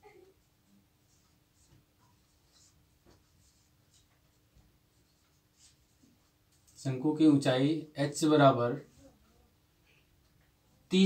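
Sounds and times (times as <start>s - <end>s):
marker writing on whiteboard: 0.4s - 6.8s.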